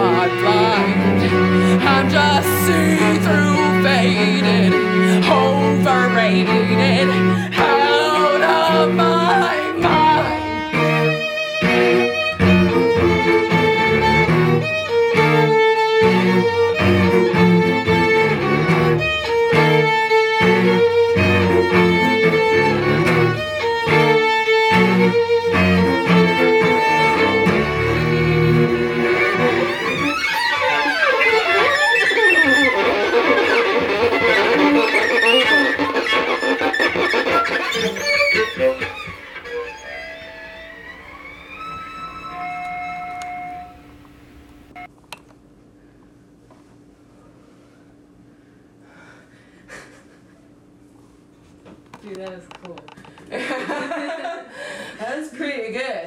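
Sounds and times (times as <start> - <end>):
violin and cello duo playing: 0.0 - 44.9.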